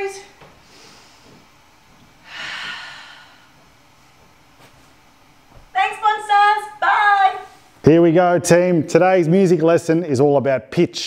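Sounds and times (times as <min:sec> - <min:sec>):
woman exhaling with a sigh: 0:02.2 - 0:03.5.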